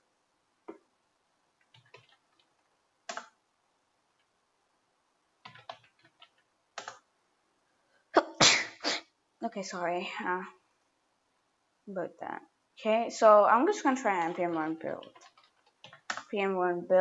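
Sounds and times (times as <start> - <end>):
keyboard typing: 1.6 - 3.4, 5.4 - 7.1, 13.8 - 16.3
loud sneeze: 8.1 - 9.1.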